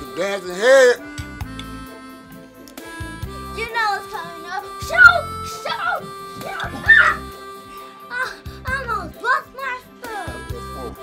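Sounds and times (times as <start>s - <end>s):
electronic keyboard music: 0.0s - 11.0s
high-pitched vocal cry: 4.8s - 7.4s.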